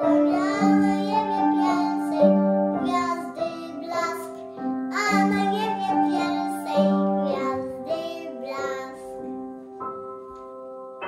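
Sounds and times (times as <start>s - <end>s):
boy singing a carol: 0.0s - 9.3s
upright piano: 0.0s - 11.0s.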